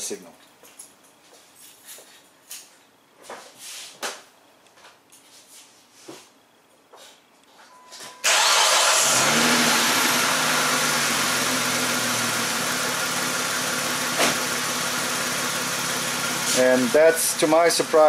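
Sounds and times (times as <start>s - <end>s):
car engine starting and idling: 8.2s - 18.0s.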